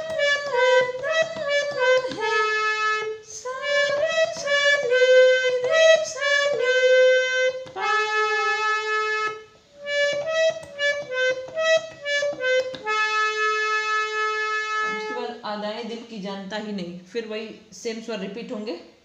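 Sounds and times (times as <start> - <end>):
harmonium melody: 0.0 - 15.4.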